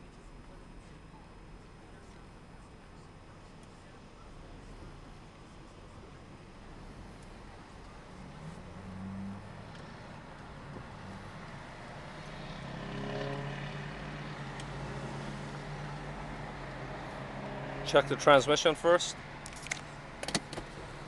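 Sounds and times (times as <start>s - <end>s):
car engine running: 0.0s - 21.0s.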